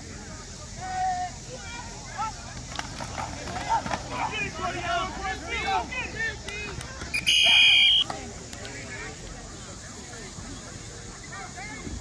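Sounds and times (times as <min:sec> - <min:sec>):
people shouting: 0:03.4 - 0:08.1
referee's whistle blast: 0:07.1 - 0:08.1.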